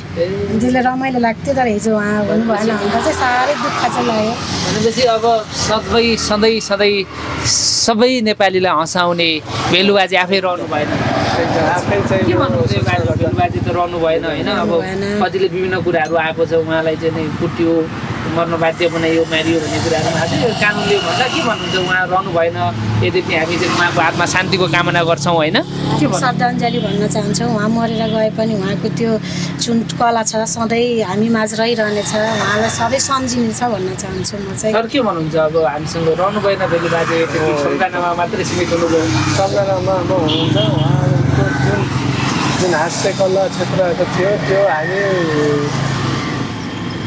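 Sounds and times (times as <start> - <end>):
voices talking: 0.0 - 46.8
road traffic hum: 0.0 - 47.0.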